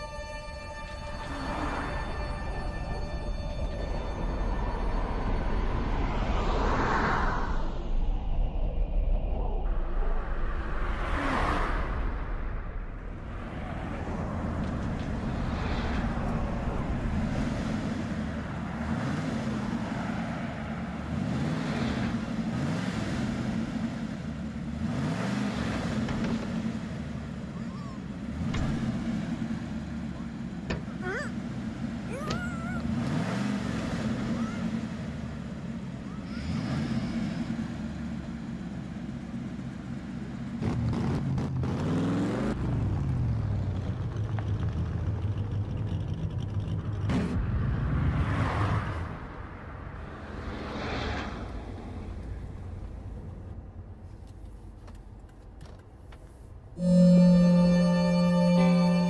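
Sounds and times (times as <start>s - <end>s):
car engine idling and revving: 0.0s - 8.2s, 9.6s - 59.0s.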